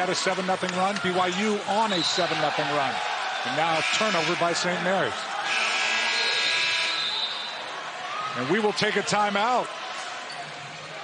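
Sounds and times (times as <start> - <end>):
arena crowd noise: 0.0 - 11.0
referee's whistle: 1.8 - 2.6, 5.5 - 7.7.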